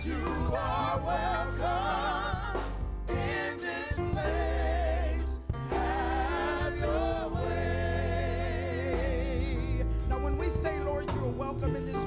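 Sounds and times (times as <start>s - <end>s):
choir singing worship song: 0.0s - 10.7s.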